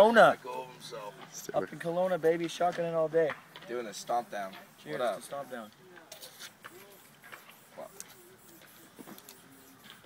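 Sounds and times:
faint voices: 0:03.5 - 0:10.0.

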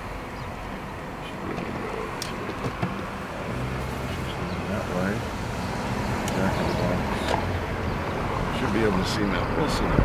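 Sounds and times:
car road and engine noise: 0:00.0 - 0:10.0.

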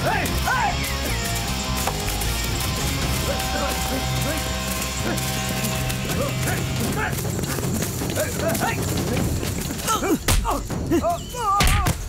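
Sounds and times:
quick scuffling footsteps: 0:00.0 - 0:11.2
film music score: 0:00.0 - 0:12.0.

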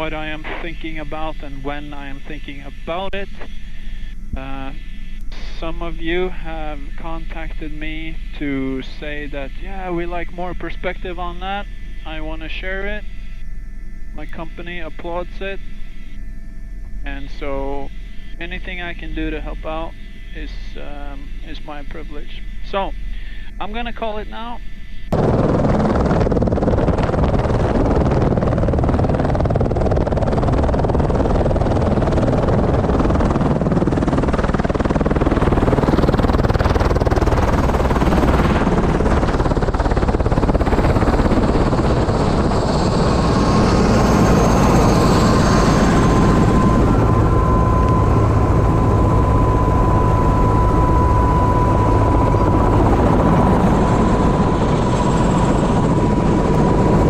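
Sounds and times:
helicopter turbine and rotor: 0:00.0 - 0:57.0
steady high whine: 0:00.0 - 0:57.0.

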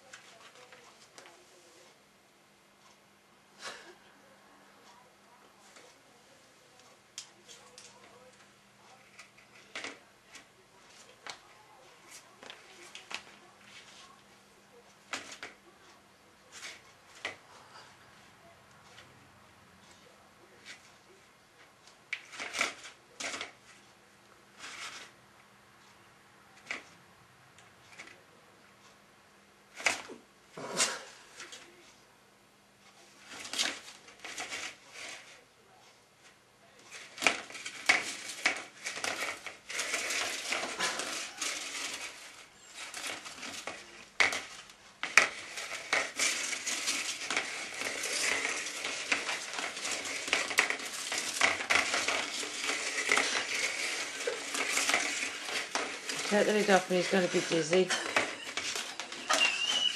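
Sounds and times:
plastic basket scraping on tiles: 0:15.1 - 0:15.6, 0:16.5 - 0:17.4, 0:22.1 - 0:23.8, 0:24.6 - 0:25.2, 0:33.2 - 0:35.4, 0:36.8 - 0:59.9.

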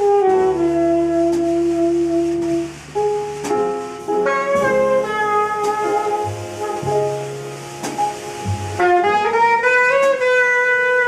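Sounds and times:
tenor saxophone: 0:00.0 - 0:03.2, 0:04.0 - 0:11.0
double bass low note: 0:00.0 - 0:10.3
piano: 0:00.0 - 0:11.0.

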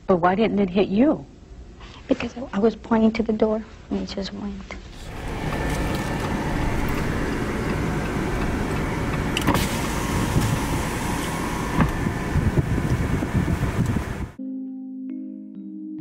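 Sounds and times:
car engine and road noise: 0:04.9 - 0:14.4.

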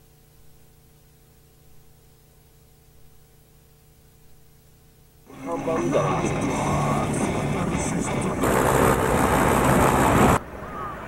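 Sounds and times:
loud rushing noise: 0:05.3 - 0:10.6
voices: 0:05.3 - 0:11.0.

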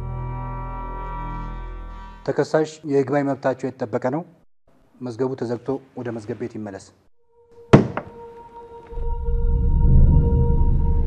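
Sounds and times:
loud knock: 0:07.7 - 0:08.2
lighter knock: 0:07.8 - 0:08.1.

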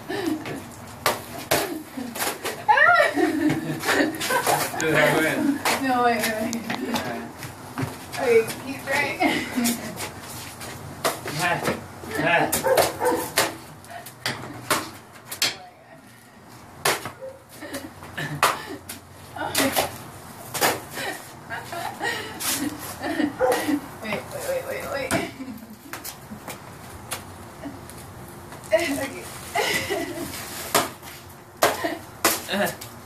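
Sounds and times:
stick whacking pinata: 0:01.0 - 0:02.6, 0:12.5 - 0:15.6, 0:16.8 - 0:17.2, 0:19.5 - 0:21.0, 0:30.4 - 0:32.8.

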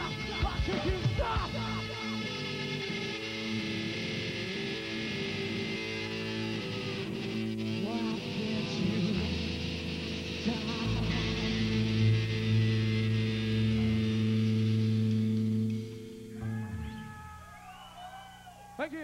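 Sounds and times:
hard rock band playing: 0:00.0 - 0:17.5
deep bass note: 0:10.8 - 0:17.1.

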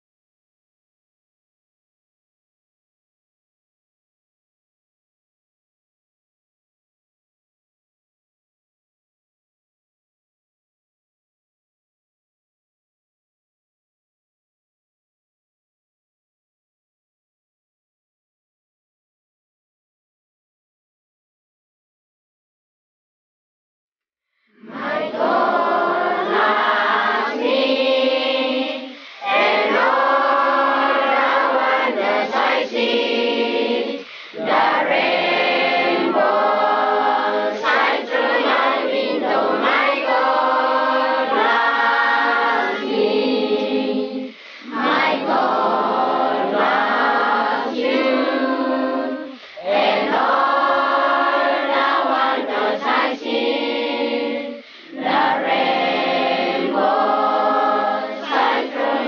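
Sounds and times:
group singing in chorus: 0:24.6 - 0:59.0.

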